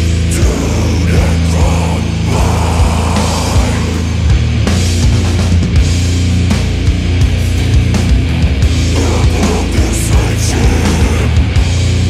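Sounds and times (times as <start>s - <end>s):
low guitar and bass drone: 0.0s - 12.0s
drum hits: 1.2s - 11.8s.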